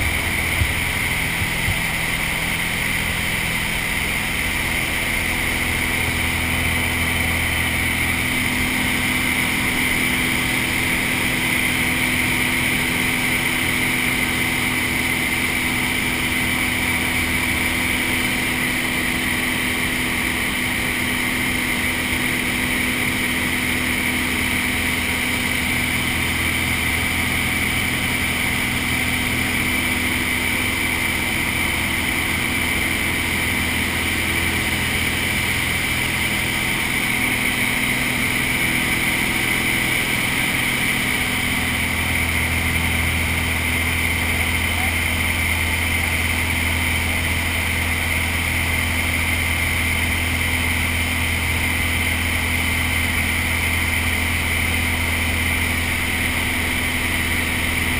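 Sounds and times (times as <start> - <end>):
propeller plane engine drone: 0.0 - 57.9.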